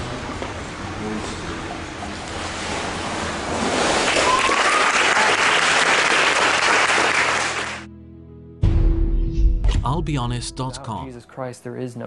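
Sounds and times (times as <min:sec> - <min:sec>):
water sloshing in a pool: 0:01.4 - 0:05.0
applause and cheering: 0:04.0 - 0:07.9
rising whoop: 0:04.1 - 0:05.6.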